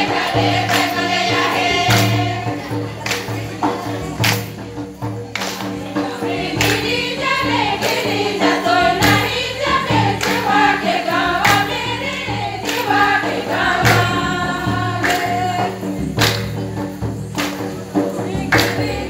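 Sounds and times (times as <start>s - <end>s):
group singing folk song: 0.0s - 19.0s
percussive beat: 0.0s - 19.0s.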